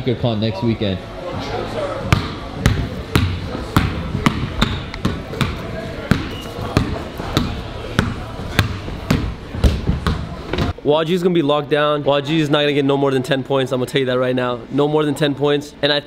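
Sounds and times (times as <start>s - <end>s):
basketball dribbling on hardwood: 2.1s - 10.7s.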